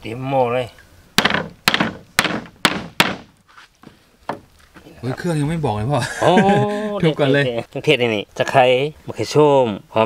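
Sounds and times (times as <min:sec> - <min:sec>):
stalks thunking on wooden block: 0:01.2 - 0:04.5
faint knock: 0:03.8 - 0:04.5.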